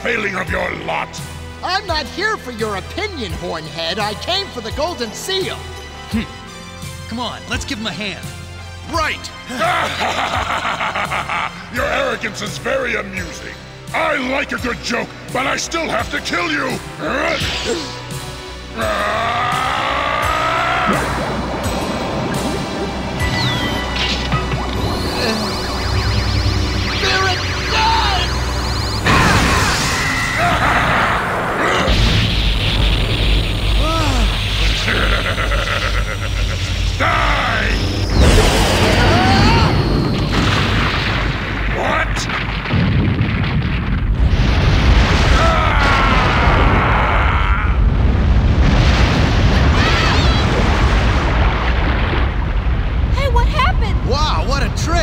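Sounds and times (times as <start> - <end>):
dramatic music: 0.0 - 55.0
shouts and grunts of effort: 18.7 - 21.3, 38.9 - 39.9, 45.4 - 48.0
heavy booms and blasts: 20.9 - 35.6, 36.2 - 55.0.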